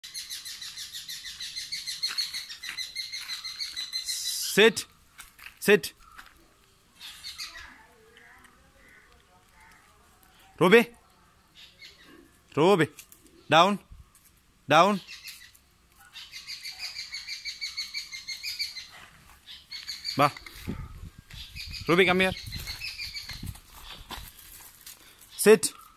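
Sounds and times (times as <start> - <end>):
bird chirping: 0.0 - 12.6, 13.2 - 25.9
bird chirping rapidly: 19.5 - 24.1.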